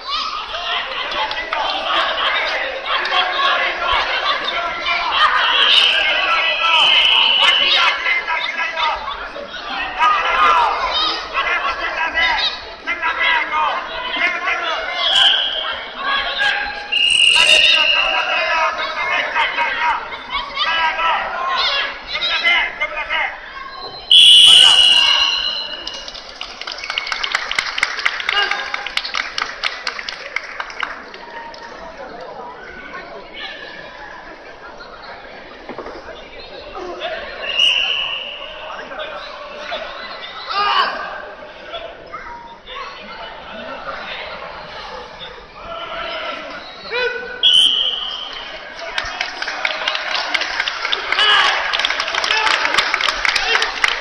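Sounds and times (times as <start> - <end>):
crowd voices: 0.0 - 54.0
scattered clapping: 0.9 - 2.1, 24.6 - 32.4, 48.2 - 54.0
referee's whistle blast: 5.5 - 8.0, 15.0 - 15.8, 16.9 - 18.3, 24.1 - 25.9, 37.4 - 38.6, 47.4 - 48.4.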